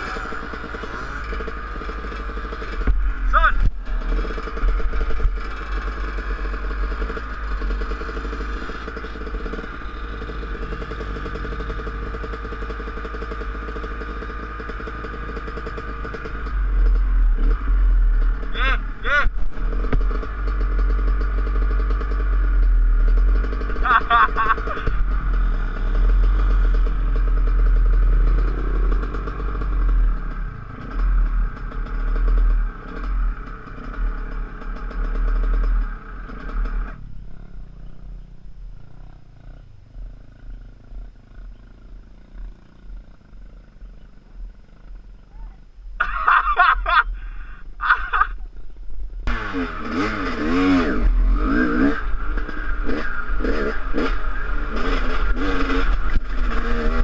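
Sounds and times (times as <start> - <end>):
dirt bike engine idling: 0.0 - 57.0.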